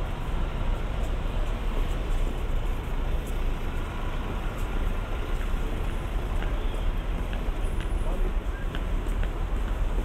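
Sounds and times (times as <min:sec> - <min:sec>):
cars passing on street: 0:00.0 - 0:10.0.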